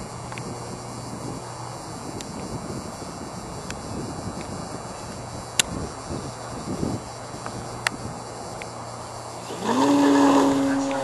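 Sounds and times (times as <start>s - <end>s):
electric model plane motor whine: 9.3s - 11.0s.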